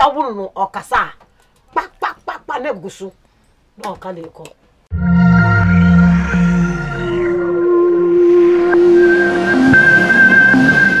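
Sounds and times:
outro music with long high note: 4.9s - 11.0s.

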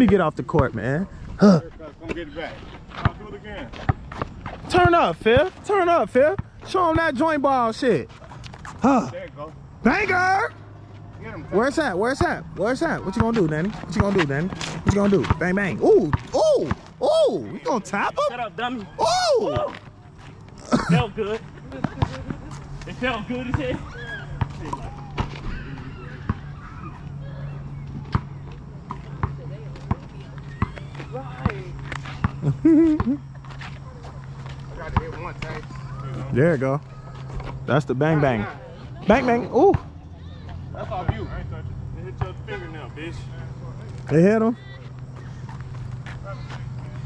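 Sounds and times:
basketball bouncing on asphalt: 0.0s - 0.8s, 2.9s - 7.2s, 12.1s - 17.0s, 21.7s - 25.5s, 27.8s - 35.5s
person calling out loudly: 15.8s - 18.3s, 19.0s - 19.7s.

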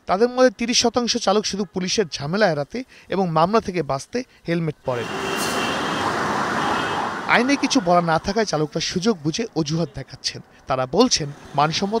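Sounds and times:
road traffic: 4.3s - 12.0s.

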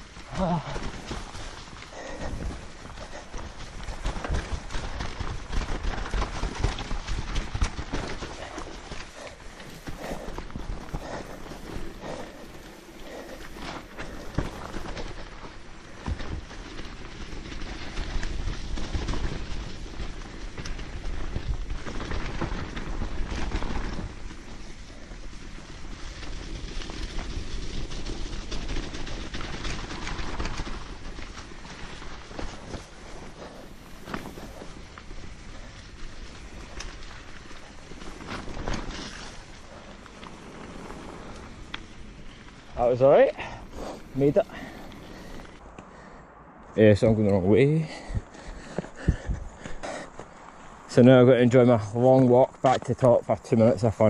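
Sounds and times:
bike rattling and knocking: 0.0s - 45.6s, 48.0s - 50.3s
bike tyres rolling over leaves: 0.0s - 54.0s.

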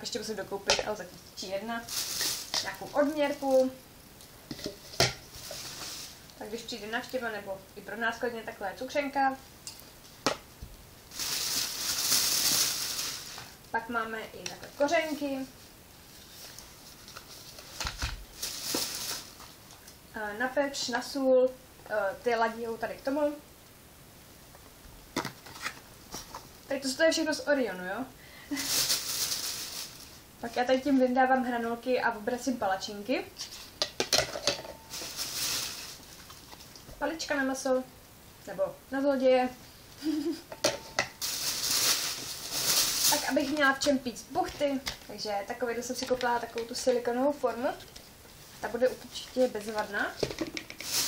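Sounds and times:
soft rustle: 1.0s - 7.5s, 11.1s - 20.1s, 28.5s - 31.0s, 33.4s - 33.8s, 34.6s - 37.0s, 41.2s - 51.0s.

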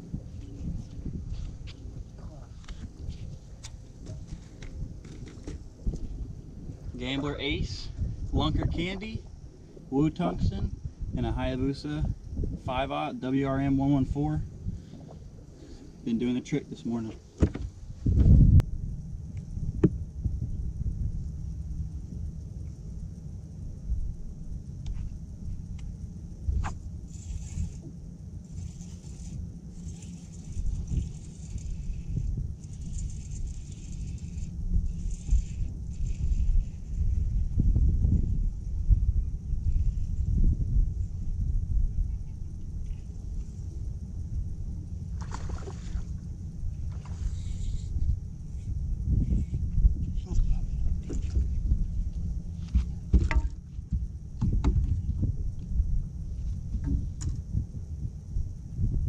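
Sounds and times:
wind buffeting microphone: 0.0s - 16.1s, 17.2s - 59.0s
water lapping against boat hull: 45.1s - 46.2s.

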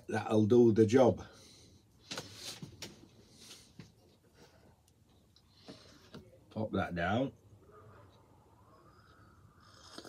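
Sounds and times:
faint sipping from a mug: 8.7s - 10.0s.

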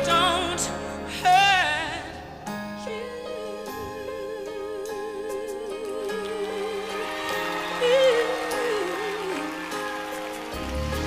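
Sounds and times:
orchestra and band chords: 6.4s - 11.0s.

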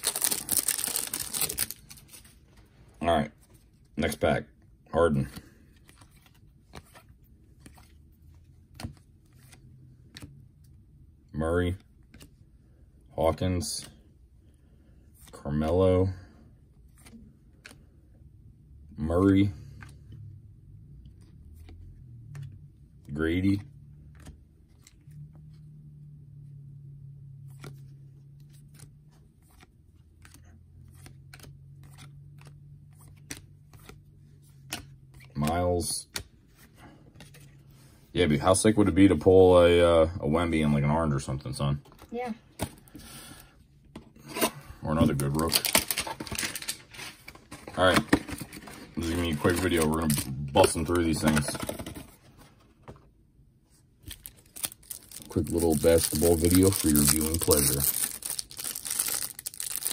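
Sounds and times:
cards sliding and clicking: 27.5s - 37.8s.

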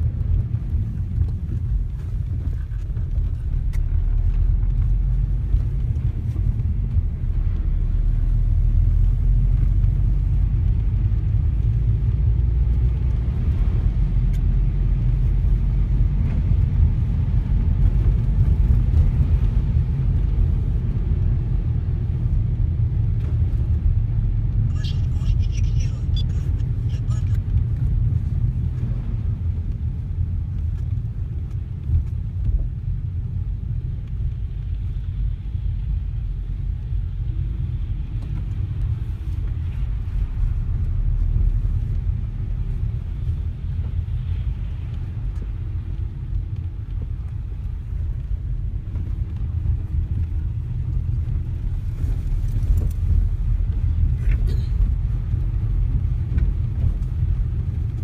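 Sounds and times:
crackle: 0.0s - 17.1s, 22.1s - 58.0s
car driving cabin rumble: 0.0s - 58.0s
tyres on wet slushy road: 0.0s - 58.0s.

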